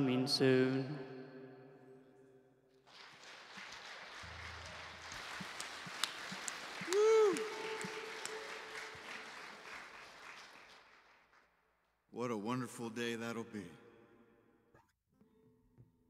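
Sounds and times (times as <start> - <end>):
crowd applauding: 2.8 - 11.5.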